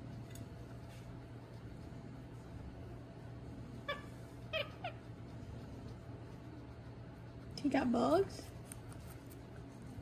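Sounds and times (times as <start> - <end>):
small animal squeaky calls: 3.8 - 5.0.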